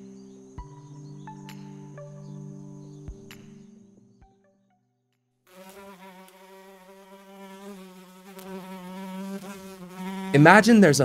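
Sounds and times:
housefly buzzing: 5.5s - 11.0s.

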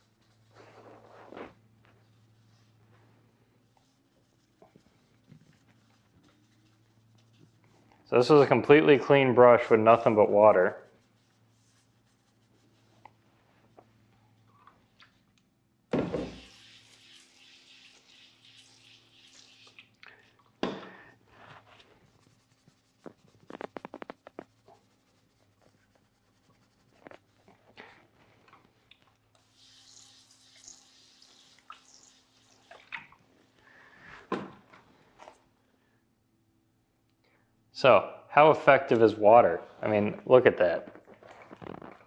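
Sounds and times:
water splashes: 31.5s - 33.2s.

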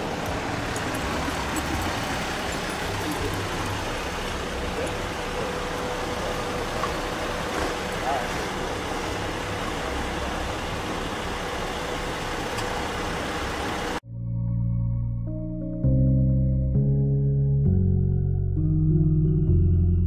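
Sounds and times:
vehicles idling: 0.0s - 14.0s.

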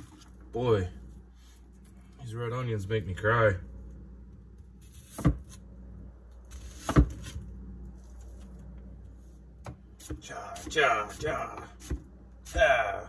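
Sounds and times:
knife chopping on wooden board: 4.9s - 5.6s, 6.5s - 7.4s.

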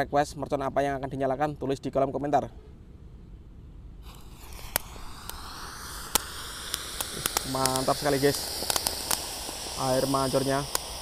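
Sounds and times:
firework spraying sparks hissing: 4.0s - 11.0s
sharp firework crackles: 4.0s - 11.0s.

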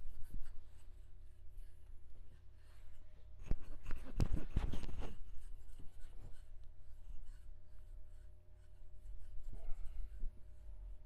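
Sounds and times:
palms rubbing over skin and sleeve: 0.0s - 10.7s
steady low hum: 0.0s - 11.0s.

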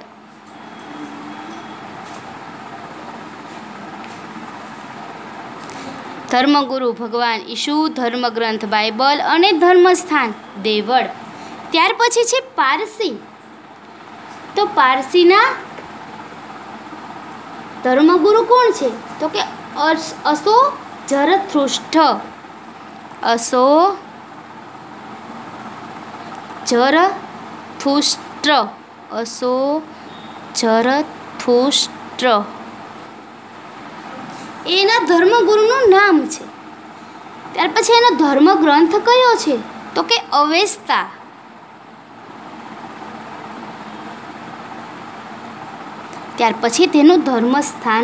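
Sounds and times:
steady background hiss: 0.0s - 48.0s.

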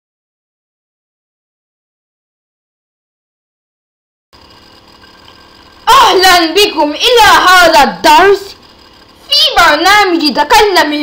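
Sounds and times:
faint background hum: 4.4s - 11.0s
child speaking loudly: 5.9s - 8.6s, 9.2s - 11.0s.

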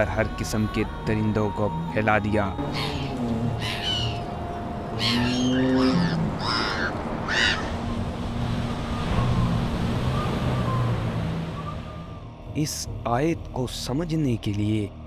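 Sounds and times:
shrill screeching creature cries: 2.7s - 4.2s, 5.0s - 7.8s.

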